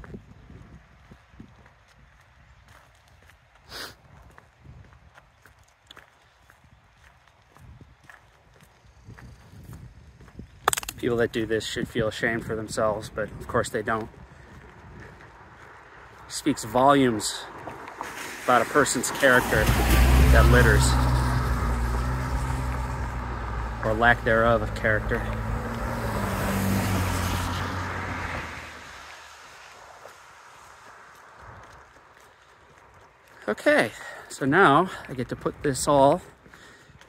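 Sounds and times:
footsteps walking: 0:01.1 - 0:10.5, 0:13.2 - 0:18.9, 0:28.8 - 0:33.6
rustle on microphone: 0:08.7 - 0:23.0
car engine humming: 0:17.9 - 0:31.4.

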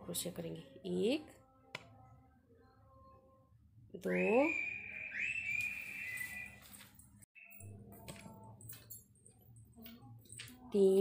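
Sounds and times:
high steady whistling tone: 0:04.0 - 0:06.8.

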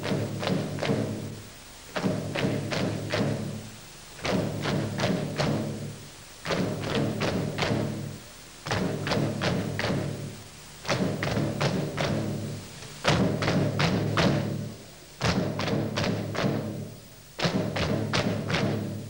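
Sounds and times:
folk band playing dance tune: 0:00.0 - 0:19.0.

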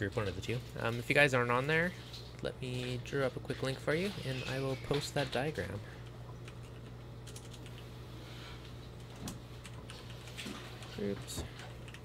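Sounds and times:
computer keyboard typing: 0:06.4 - 0:07.9, 0:09.0 - 0:12.0.

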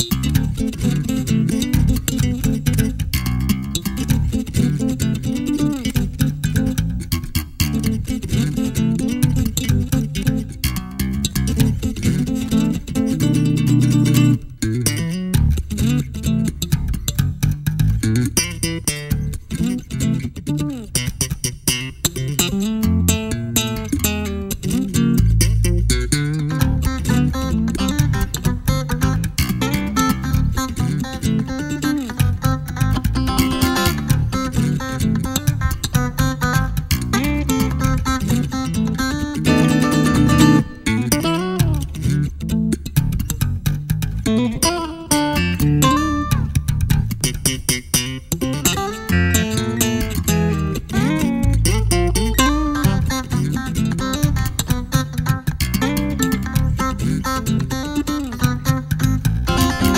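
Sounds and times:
electric bass guitar: 0:00.0 - 0:59.9
plucked guitars: 0:00.0 - 0:59.9.

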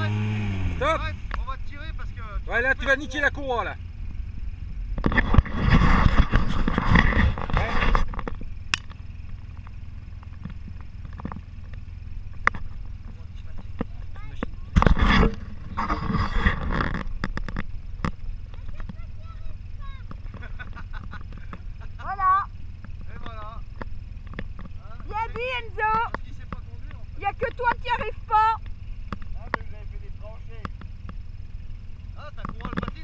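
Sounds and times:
off-road vehicle engine revving: 0:00.0 - 0:33.0.

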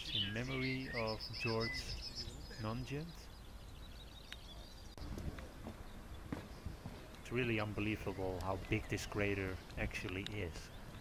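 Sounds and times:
wind rumble on microphone: 0:04.7 - 0:07.8
footsteps on grass: 0:05.2 - 0:07.1.

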